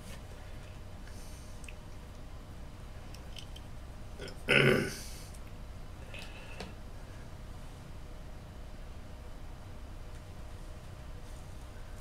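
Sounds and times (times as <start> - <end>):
low throaty vocal sound: 4.2 - 5.2.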